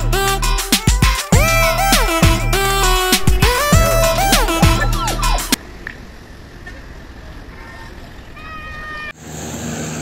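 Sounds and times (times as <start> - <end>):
road traffic rumble: 1.4 - 10.0.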